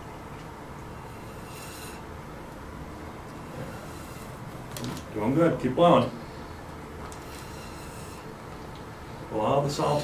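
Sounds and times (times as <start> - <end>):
breath hissing through straws: 1.0 - 2.1, 3.4 - 4.5, 7.2 - 8.4.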